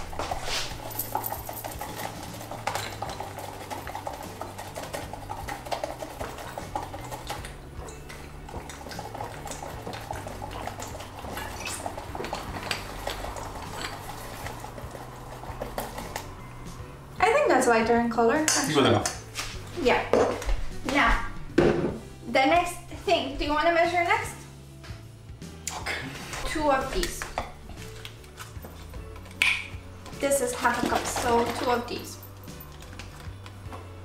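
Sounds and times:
whisk clattering in metal bowl: 0.0 - 16.4, 30.5 - 32.0.

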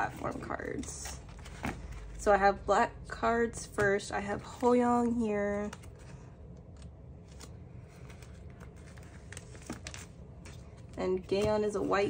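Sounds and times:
plastic sleeves rustling: 3.7 - 12.0.

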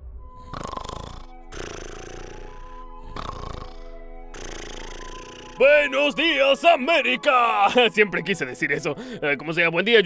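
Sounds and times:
soft background music: 0.0 - 10.0
rattling snore: 0.4 - 5.6.

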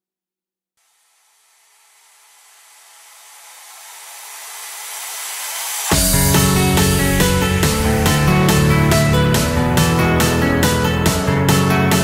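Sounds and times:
hissing noise riser: 1.0 - 11.6.

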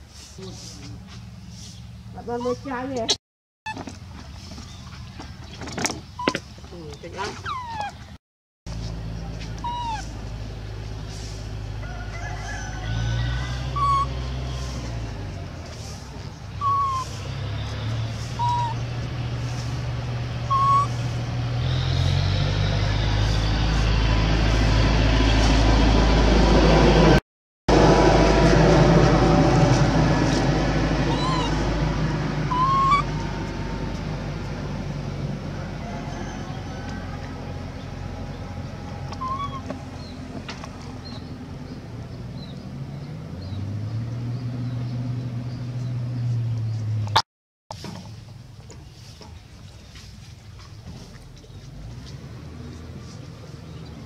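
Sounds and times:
motor engine humming: 8.7 - 47.1.

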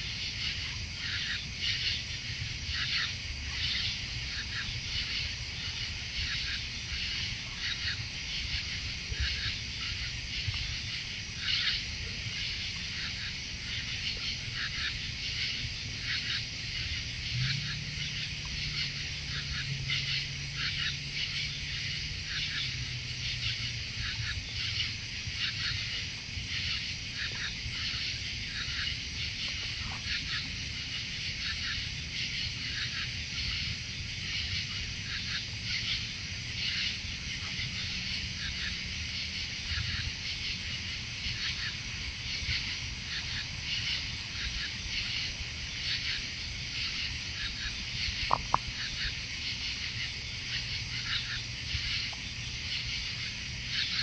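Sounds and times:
low steady hum: 0.0 - 54.0
night insects chirring: 0.0 - 54.0.

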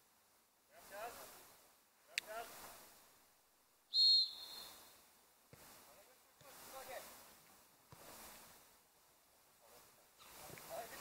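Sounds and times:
referee's whistle blast: 3.9 - 4.8.

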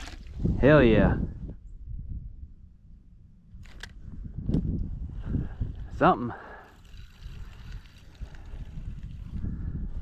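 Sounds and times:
wind rumble on microphone: 0.0 - 10.0
short clicks and rustles: 3.6 - 4.6.

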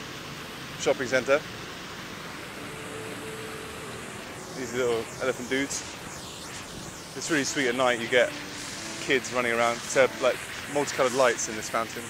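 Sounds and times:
road traffic hum: 0.0 - 11.9
fountain water splashing: 0.0 - 12.0.

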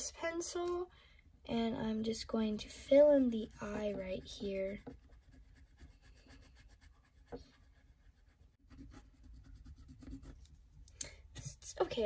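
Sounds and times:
colored pencil scratching on paper: 3.0 - 10.6.

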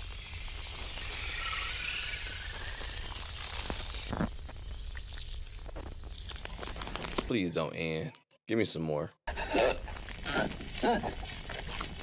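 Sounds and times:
sharp crackles: 0.0 - 7.4
distorted static-like noise: 2.0 - 4.7.

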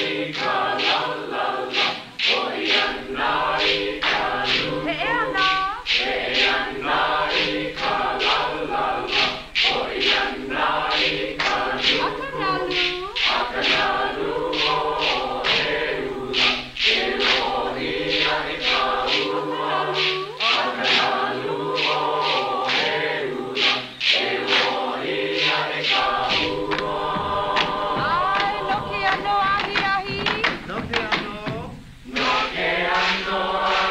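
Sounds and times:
group chanting in unison: 0.0 - 33.9
sharp percussive strikes: 0.0 - 33.9.

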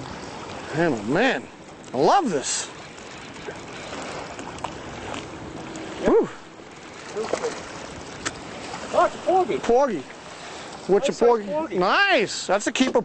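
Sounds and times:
water noise: 0.0 - 13.0
wind: 0.0 - 13.0.

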